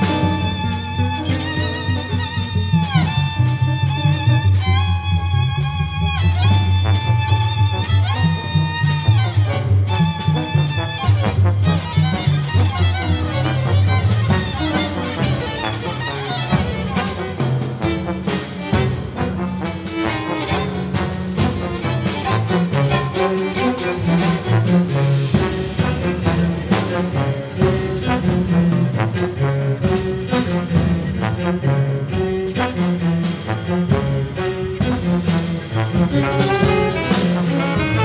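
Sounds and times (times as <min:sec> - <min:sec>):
bowed strings: 0:00.0 - 0:38.0
brass: 0:00.0 - 0:38.0
double bass: 0:00.0 - 0:38.0
jazz horns playing: 0:00.0 - 0:38.0
drum and cymbal strikes: 0:14.3 - 0:38.0.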